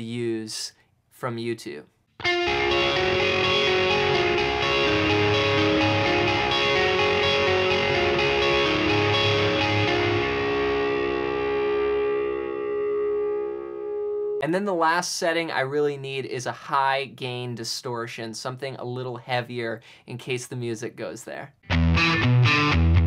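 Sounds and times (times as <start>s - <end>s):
electric guitar with delay: 2.2s - 14.4s.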